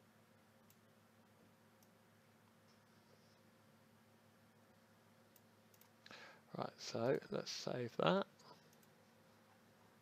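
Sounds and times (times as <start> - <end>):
computer mouse clicks: 0.6 - 0.9, 5.3 - 6.2, 8.4 - 9.0
man speaking: 6.5 - 8.5.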